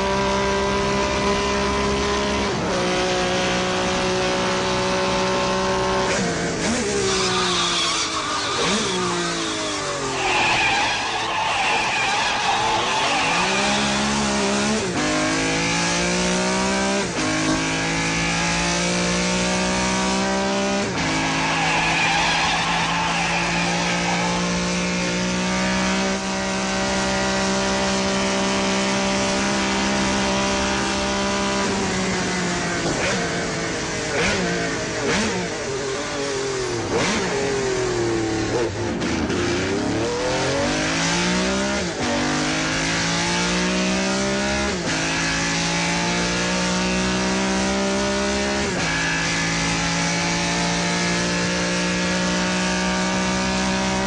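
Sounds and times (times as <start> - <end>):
sports car engine revving: 8.2 - 54.0.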